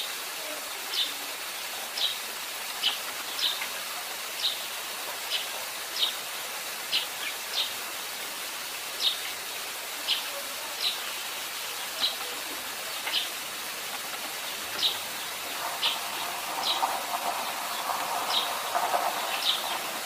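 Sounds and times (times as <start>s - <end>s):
steady hiss: 0.0s - 20.0s
sparrow chirping: 14.8s - 19.9s.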